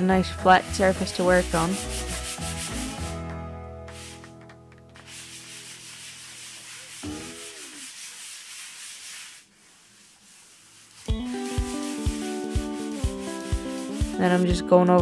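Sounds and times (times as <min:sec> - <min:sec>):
background music with steady beat: 0:00.0 - 0:06.2, 0:11.0 - 0:15.0
sanding sponge rubbing wood: 0:00.7 - 0:03.2, 0:03.9 - 0:04.3, 0:05.0 - 0:14.8.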